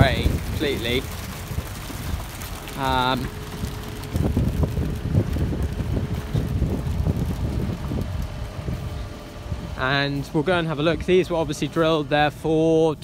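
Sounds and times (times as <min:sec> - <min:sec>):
rain on cab: 0:00.0 - 0:13.0
tractor engine rumbling: 0:00.0 - 0:13.0
wind buffeting cab: 0:00.0 - 0:13.0.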